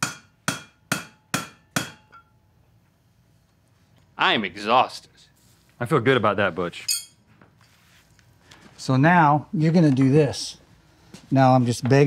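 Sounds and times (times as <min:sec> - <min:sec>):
hammer striking on anvil: 0:00.0 - 0:02.4.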